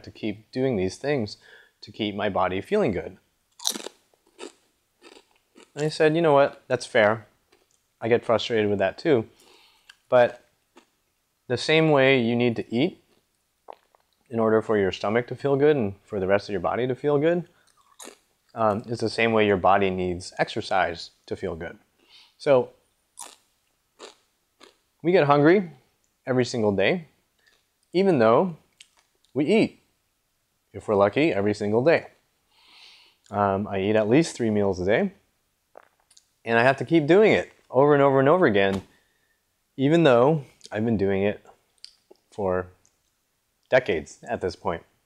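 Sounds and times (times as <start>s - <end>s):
man breathing: 1.4s - 1.8s, 9.4s - 9.9s, 22.0s - 22.4s, 32.5s - 33.3s
crunchy snack chewing: 3.6s - 5.8s, 17.6s - 18.2s, 23.2s - 23.4s, 24.0s - 24.8s.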